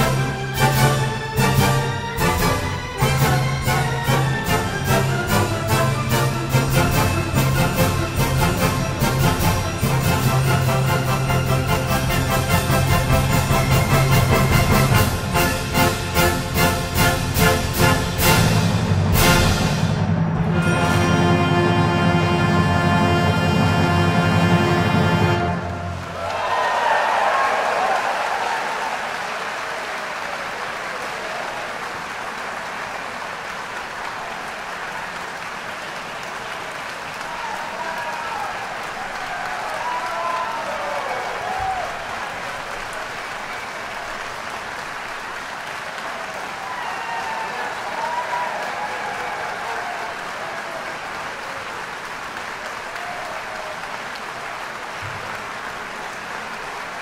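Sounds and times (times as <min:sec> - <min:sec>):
audience applauding: 0:00.0 - 0:19.8, 0:23.2 - 0:57.0.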